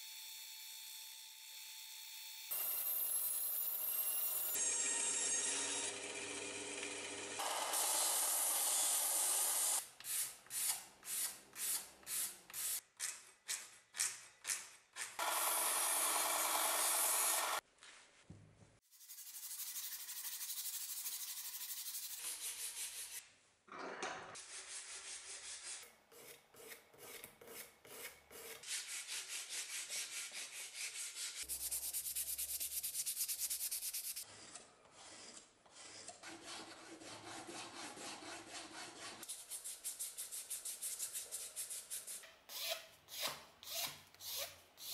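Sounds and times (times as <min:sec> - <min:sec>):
hand sanding and filing strokes: 0:18.9 - 0:23.2, 0:24.4 - 0:43.8.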